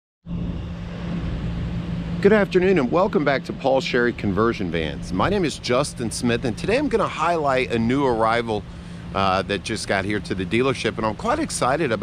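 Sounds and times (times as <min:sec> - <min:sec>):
constant low hum: 0:00.2 - 0:12.0
steady low rumble: 0:00.2 - 0:12.0.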